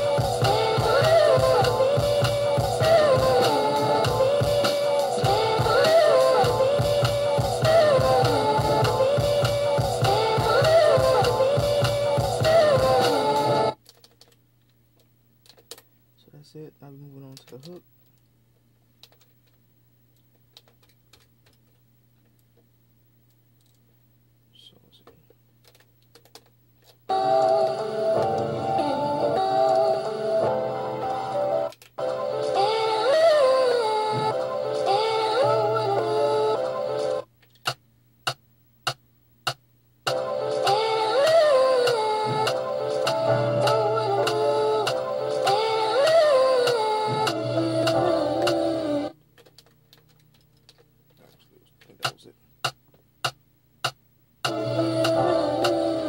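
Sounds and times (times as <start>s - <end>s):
soul music with singing: 0.0s - 13.8s, 27.1s - 37.3s, 40.1s - 49.2s, 54.5s - 56.0s
pads and buttons clicking: 17.1s - 18.3s, 19.0s - 22.6s, 25.0s - 28.5s, 37.4s - 40.8s, 49.4s - 55.8s.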